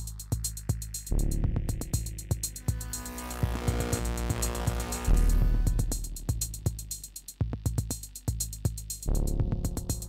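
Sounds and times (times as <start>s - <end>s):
hi-hat ticks: 0.0s - 10.0s
low bass: 0.0s - 10.0s
electronic synthesizer music: 1.7s - 6.8s.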